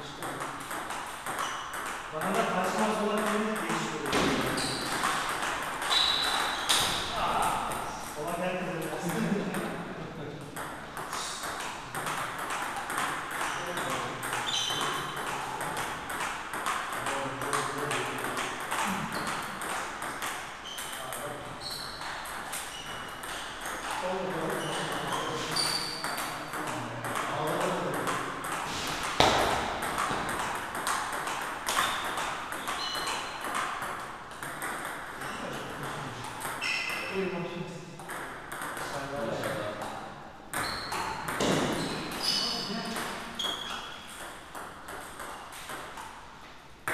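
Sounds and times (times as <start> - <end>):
distant table tennis clicks: 0.2 - 8.2, 10.4 - 37.2, 38.0 - 46.9.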